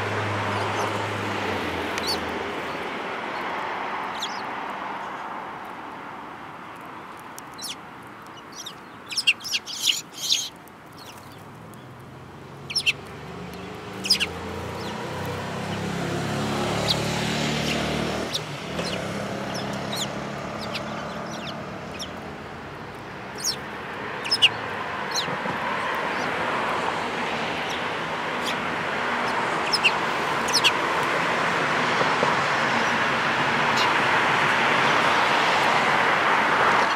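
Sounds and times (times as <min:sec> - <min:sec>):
sparrow chirping: 0:00.5 - 0:01.0, 0:01.6 - 0:03.4, 0:04.1 - 0:04.5, 0:07.1 - 0:26.4, 0:27.4 - 0:31.0, 0:33.7 - 0:34.0
bird pecking seeds: 0:06.8 - 0:17.9.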